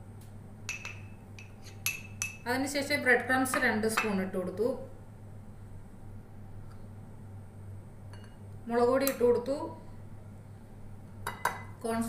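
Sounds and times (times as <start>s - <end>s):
spoon clinking against glass bowl: 0.7s - 2.4s.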